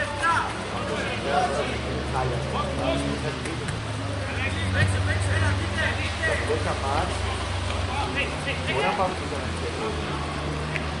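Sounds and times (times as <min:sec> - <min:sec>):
distant shouts of footballers: 0:00.0 - 0:01.6.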